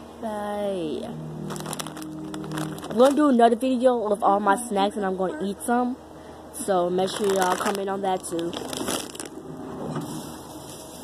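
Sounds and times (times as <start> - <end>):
snack packaging rustling: 1.4 - 3.2, 7.0 - 9.4
small clicks of packaging: 1.5 - 3.2.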